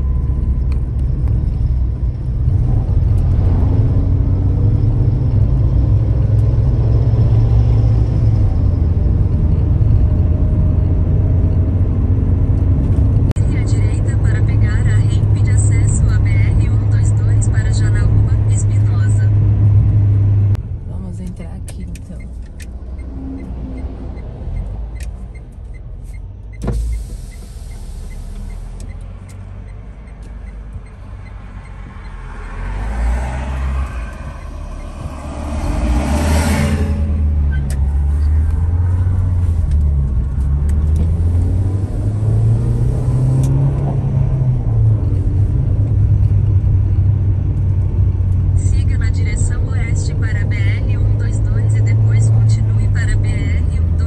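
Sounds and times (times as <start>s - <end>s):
car road and engine rumble: 0.0s - 54.0s
bus passing: 27.3s - 54.0s.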